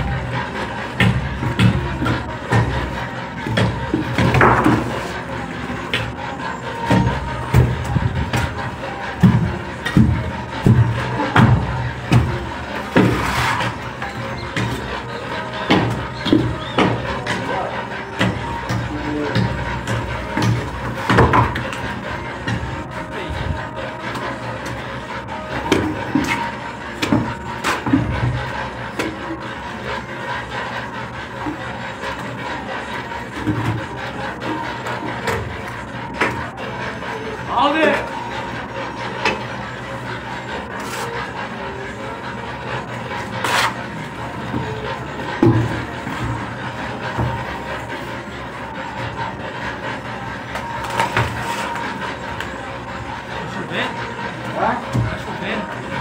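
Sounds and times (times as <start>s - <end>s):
trowel scraping concrete wall: 12.8s - 15.0s, 42.7s - 44.7s.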